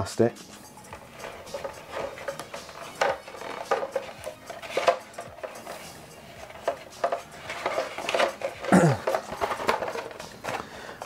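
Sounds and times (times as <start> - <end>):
taps scrapes and rustles: 0.5 - 11.0
plastic armour pieces clattering: 1.2 - 11.0.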